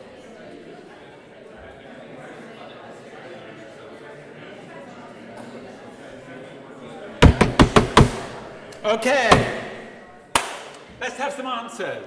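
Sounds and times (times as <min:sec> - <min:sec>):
loud knocks: 0:07.2 - 0:10.5.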